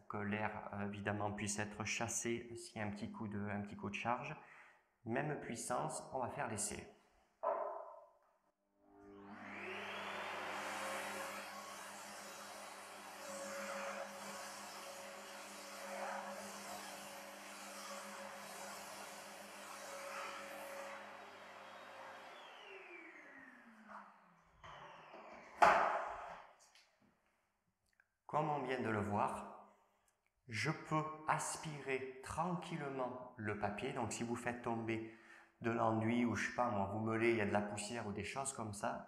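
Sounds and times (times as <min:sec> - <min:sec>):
vacuum cleaner running: 0:08.8 - 0:26.4.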